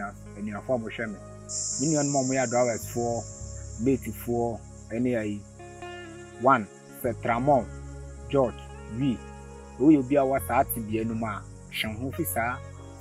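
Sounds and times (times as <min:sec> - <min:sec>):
insect chirring: 0:00.0 - 0:13.0
quiet music with bass line: 0:00.0 - 0:13.0
person talking: 0:01.8 - 0:05.4, 0:06.4 - 0:07.7, 0:09.8 - 0:12.6.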